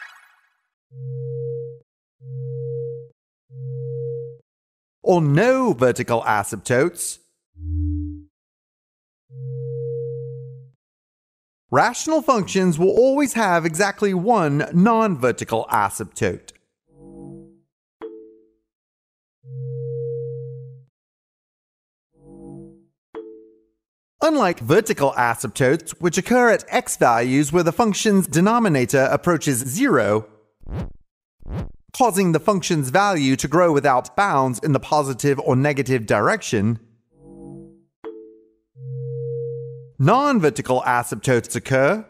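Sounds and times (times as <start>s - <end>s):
synthesized electronic tone: 7.6s - 8.3s.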